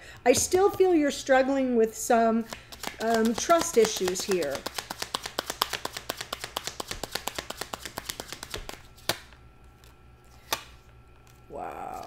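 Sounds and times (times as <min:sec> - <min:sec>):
cards being shuffled: 0:02.4 - 0:12.0.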